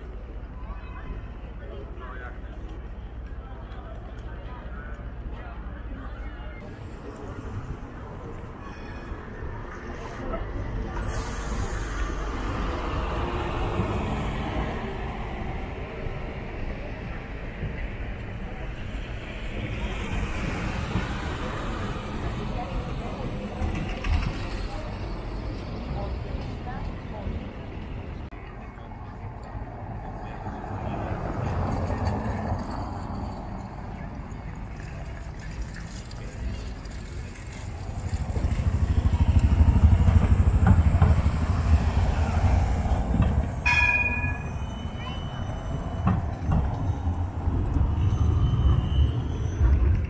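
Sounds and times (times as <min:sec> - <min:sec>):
coach diesel engines rumbling: 0:00.0 - 0:50.0
crowd chatter: 0:00.0 - 0:50.0
street noise: 0:00.0 - 0:50.0.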